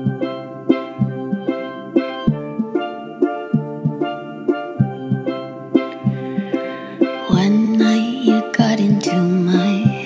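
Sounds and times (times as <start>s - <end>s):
bright pitched riff notes: 0.0s - 10.0s.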